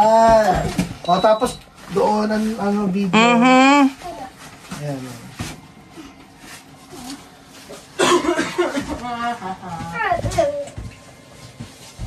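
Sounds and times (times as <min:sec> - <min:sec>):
person humming: 0:03.2 - 0:04.0.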